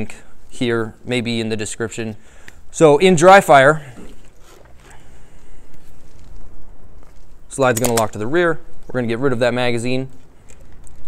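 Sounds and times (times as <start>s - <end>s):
clothing rustle and handling: 3.9s - 11.0s.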